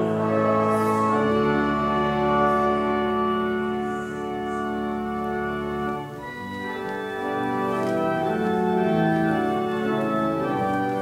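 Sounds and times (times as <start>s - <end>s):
organ playing held chords: 0.0s - 11.0s.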